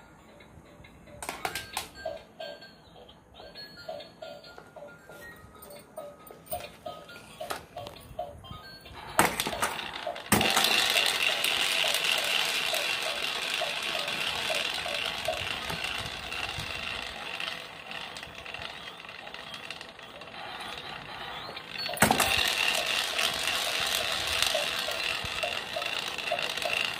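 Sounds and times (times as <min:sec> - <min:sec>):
musical toy electronic tune: 0:00.0 - 0:26.9
toys knocking: 0:21.8 - 0:26.8.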